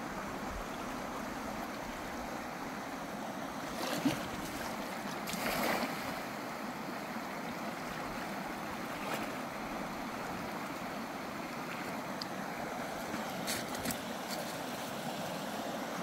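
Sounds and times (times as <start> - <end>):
stream rushing: 0.0 - 16.0.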